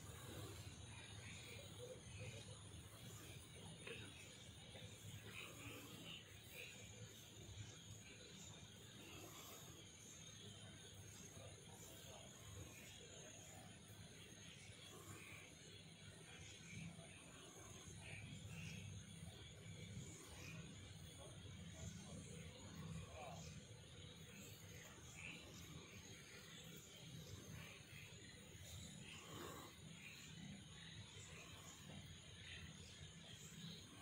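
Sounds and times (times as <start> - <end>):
faint indistinct murmurs: 0.0 - 34.0
low rumble of night ambience: 0.0 - 34.0.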